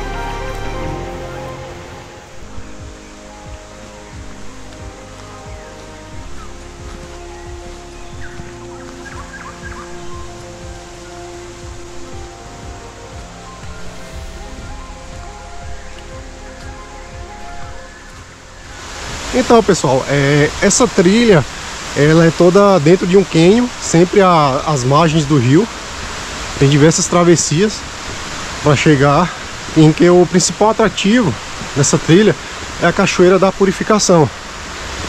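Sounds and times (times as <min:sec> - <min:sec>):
soft music of held notes: 0:00.0 - 0:35.0
water rushing in a stream: 0:00.0 - 0:35.0.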